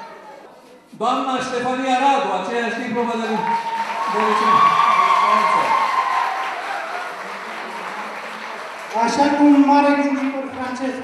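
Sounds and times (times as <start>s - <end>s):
audience applauding: 3.2s - 11.0s.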